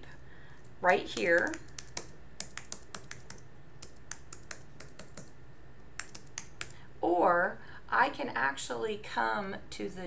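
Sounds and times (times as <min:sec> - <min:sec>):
computer keyboard typing: 0:01.2 - 0:05.3, 0:06.0 - 0:06.8.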